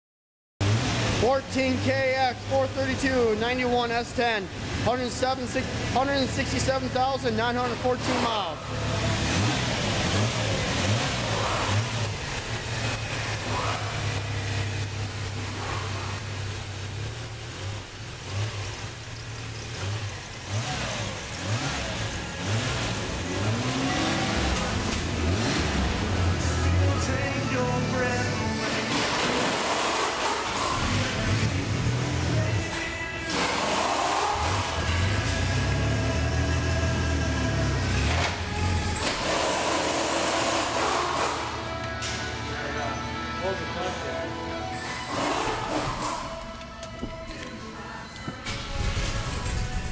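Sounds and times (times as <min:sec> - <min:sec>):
car engine revving: 0:00.6 - 0:03.0, 0:05.6 - 0:41.8.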